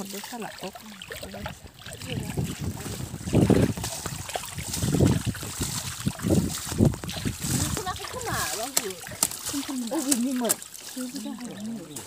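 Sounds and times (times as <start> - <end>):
wind buffeting microphone: 1.0 - 9.7.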